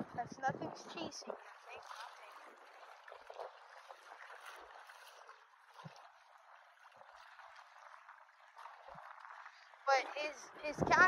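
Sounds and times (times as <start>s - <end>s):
small waves lapping at shore: 0.0s - 11.0s.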